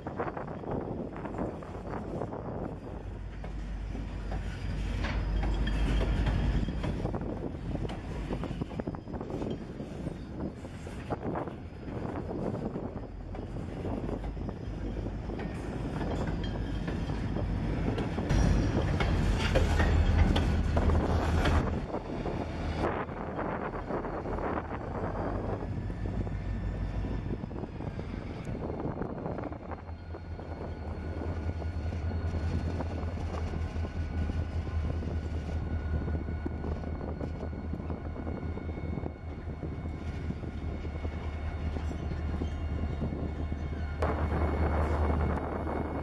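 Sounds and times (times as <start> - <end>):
diesel locomotive engine rumble: 0.0 - 46.0.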